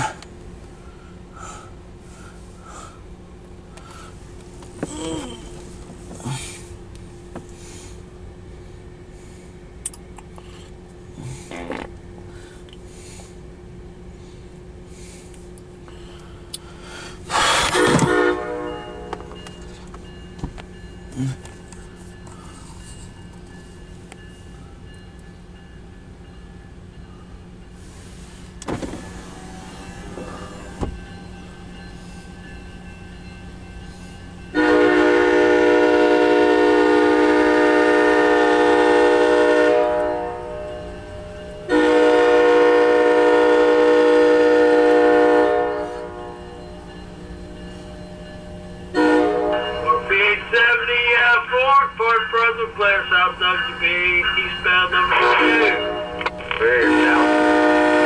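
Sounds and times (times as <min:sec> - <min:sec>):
train horn blasts: 0:17.5 - 0:19.4, 0:34.5 - 0:46.6, 0:48.9 - 0:51.4, 0:55.1 - 0:58.0.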